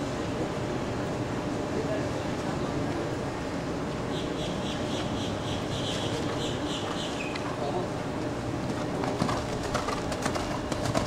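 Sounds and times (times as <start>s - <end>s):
bird-like calls: 4.1s - 7.5s
horse hoofbeats on sand: 8.6s - 11.0s.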